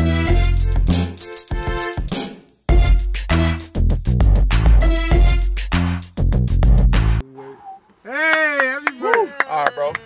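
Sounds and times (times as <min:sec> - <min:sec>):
men shouting and exclaiming: 0:08.0 - 0:09.4.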